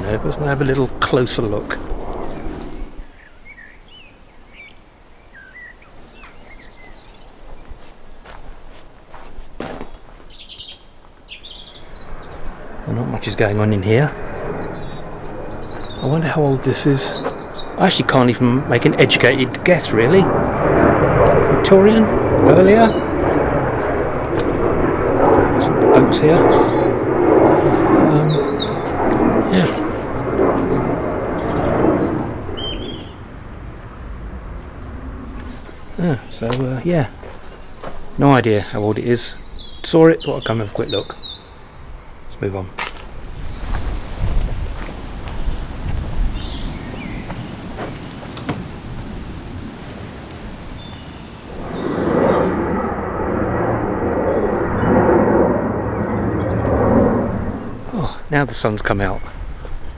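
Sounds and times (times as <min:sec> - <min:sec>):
wind buffeting microphone: 0:00.0 - 0:04.6, 0:05.3 - 0:59.9
aircraft rumble: 0:00.0 - 0:59.9
jet airliner flying overhead: 0:00.0 - 0:59.9
songbird singing: 0:02.2 - 0:08.6, 0:09.8 - 0:24.5, 0:25.2 - 0:33.3, 0:35.3 - 0:53.1, 0:55.8 - 0:59.9.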